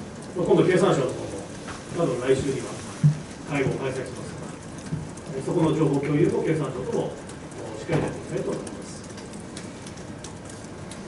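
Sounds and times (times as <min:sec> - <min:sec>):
room hiss: 0:00.0 - 0:04.6.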